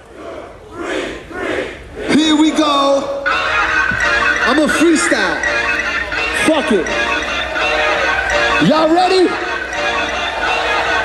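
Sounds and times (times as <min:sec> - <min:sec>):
crowd shouting in unison: 0:00.0 - 0:03.3, 0:07.0 - 0:08.7, 0:09.3 - 0:11.0.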